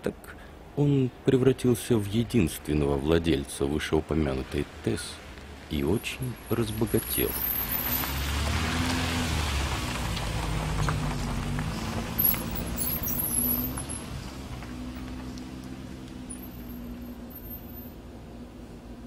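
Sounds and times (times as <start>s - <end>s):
car driving past: 7.0s - 19.0s.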